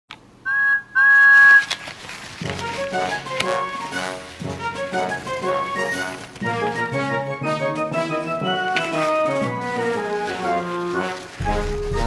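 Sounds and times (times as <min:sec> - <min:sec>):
whistle-like toots: 0:00.4 - 0:01.7.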